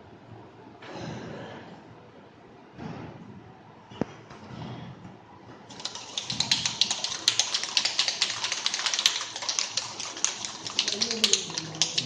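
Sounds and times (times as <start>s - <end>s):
aerosol can ball rattling: 5.7s - 12.0s.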